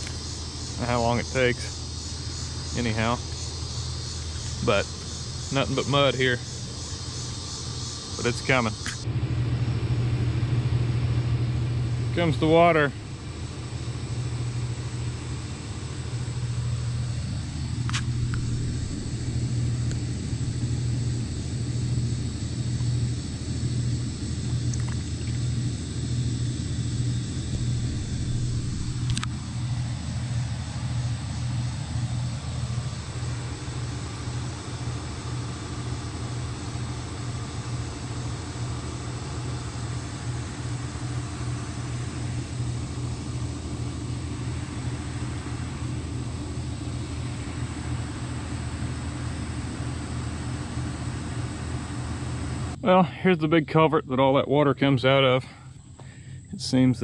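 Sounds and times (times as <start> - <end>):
engine idling: 0.0 - 10.6, 11.4 - 53.3, 55.4 - 57.0.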